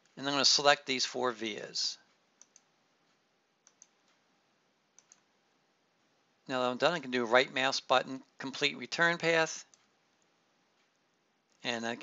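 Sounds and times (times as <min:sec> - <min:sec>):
computer mouse button clicking: 0:03.6 - 0:04.0, 0:05.0 - 0:05.3.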